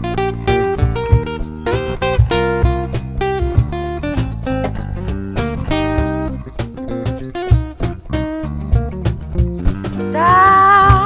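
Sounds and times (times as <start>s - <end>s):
acoustic guitar picking notes: 0.0s - 11.0s
cajon beats: 0.0s - 11.0s
electric bass: 0.0s - 11.0s.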